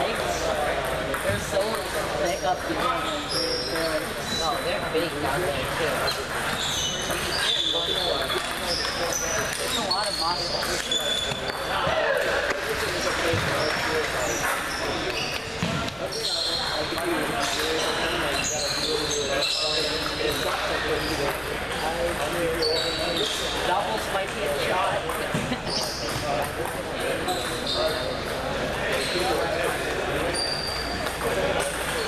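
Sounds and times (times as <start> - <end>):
table tennis balls clicking: 0.0 - 4.2, 5.6 - 11.7, 24.0 - 28.5, 29.6 - 32.0
murmur of voices: 0.0 - 32.0
short high squeaks: 30.3 - 31.1.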